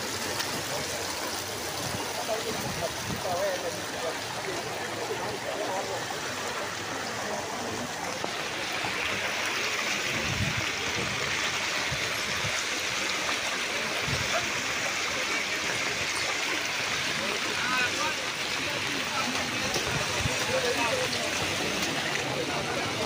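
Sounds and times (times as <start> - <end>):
faint voices: 0.0 - 23.0
floodwater rushing along street: 0.0 - 23.0.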